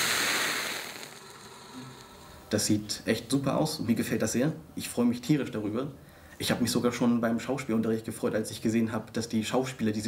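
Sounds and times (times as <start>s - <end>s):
rushing flame: 0.0s - 2.2s.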